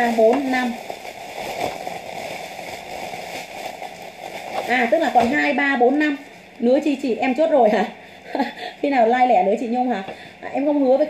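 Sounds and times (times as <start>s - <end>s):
plastic bags crinkling: 0.0s - 6.5s.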